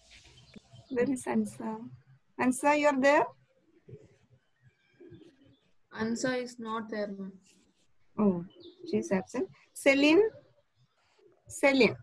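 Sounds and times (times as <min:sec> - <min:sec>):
faint background sounds: 0:00.0 - 0:12.0.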